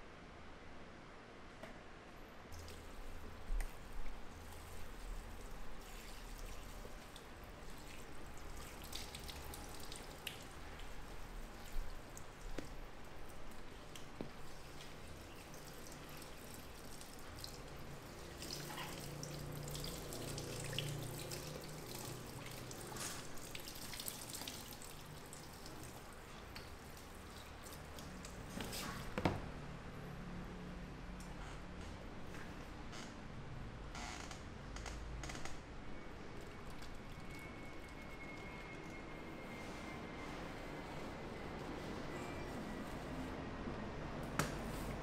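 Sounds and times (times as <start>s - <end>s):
water drips and splashes: 2.5s - 29.1s, 36.4s - 39.3s
soft clicks and sticky crackles: 36.3s - 39.0s.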